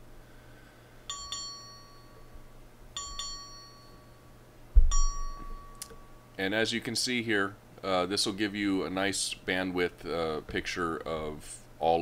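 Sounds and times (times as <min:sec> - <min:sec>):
bell-like chime: 0:01.1 - 0:06.3
loud low thump: 0:04.8 - 0:05.1.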